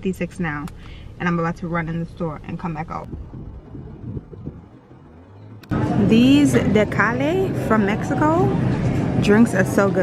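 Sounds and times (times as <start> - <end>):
low irregular rumble: 0.0 - 10.0.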